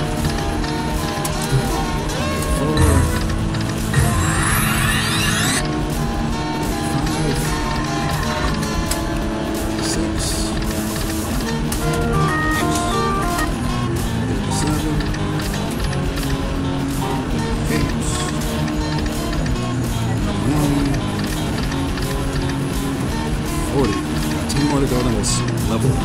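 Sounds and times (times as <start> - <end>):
electronic music: 0.0 - 26.0
slot machine jingling tones: 1.4 - 5.6, 11.8 - 13.9
steady clicks: 2.8 - 4.0, 5.1 - 17.0, 17.7 - 25.8.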